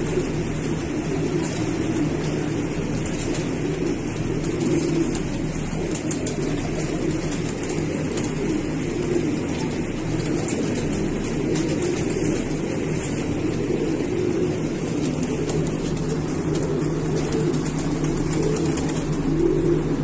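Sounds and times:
pigeons cooing: 0:00.0 - 0:20.0.

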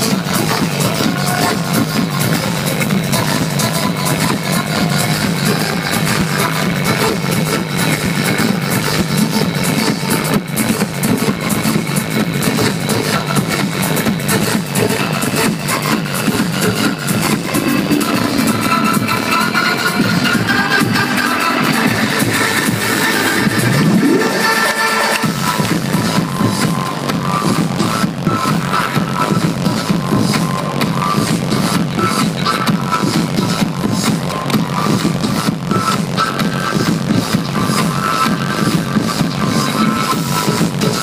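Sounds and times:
loud electronic dance music: 0:00.0 - 0:41.0.

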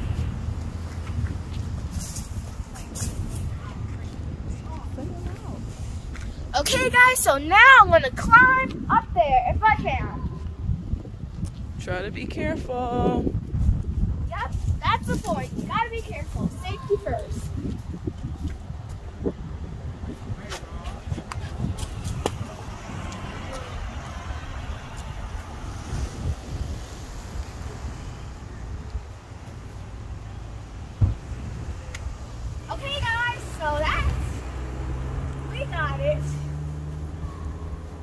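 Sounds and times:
wind rumble on microphone: 0:00.0 - 0:38.0.

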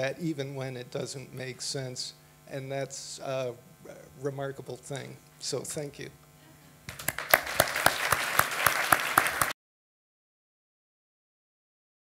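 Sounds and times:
single sharp claps: 0:06.9 - 0:09.5
audience applauding: 0:06.9 - 0:09.6.

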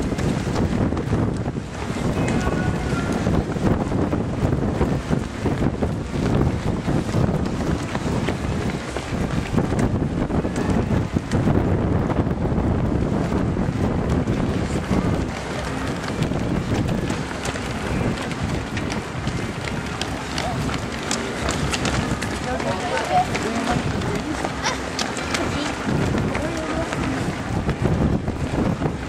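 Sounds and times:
runners' footsteps on asphalt: 0:00.0 - 0:29.0
wind buffeting microphone: 0:00.0 - 0:29.0.

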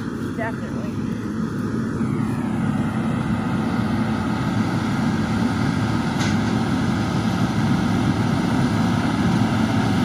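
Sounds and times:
tractor engine running: 0:00.0 - 0:10.0.

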